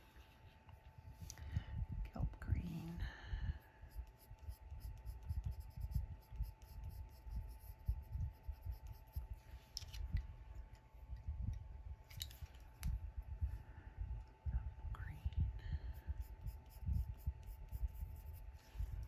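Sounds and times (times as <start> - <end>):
colored pencil scratching on paper: 3.9 - 9.4, 16.0 - 19.0.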